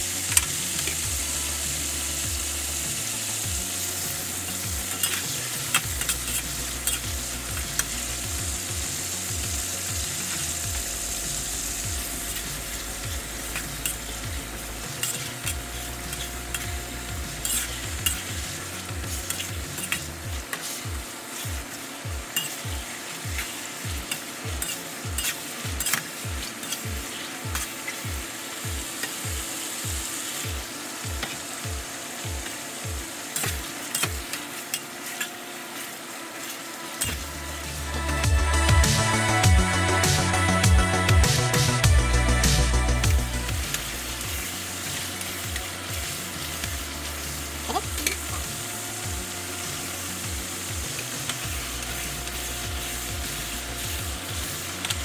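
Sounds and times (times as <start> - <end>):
metal spatula scraping wok: 0.0 - 28.0, 33.2 - 40.1, 43.2 - 55.0
chicken frying in hot oil: 0.0 - 39.4, 42.4 - 55.0.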